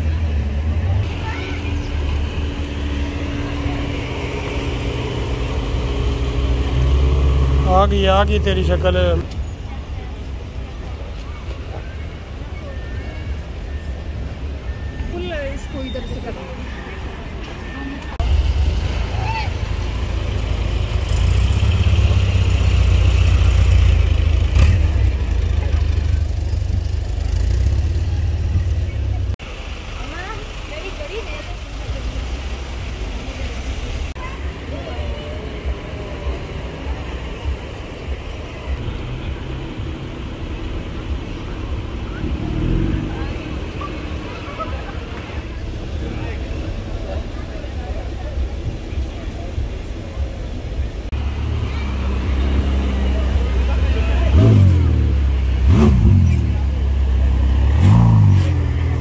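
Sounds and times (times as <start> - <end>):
car engine rumbling: 0.0 - 12.6, 13.4 - 59.0
people's voices: 0.0 - 59.0
street noise: 0.0 - 59.0.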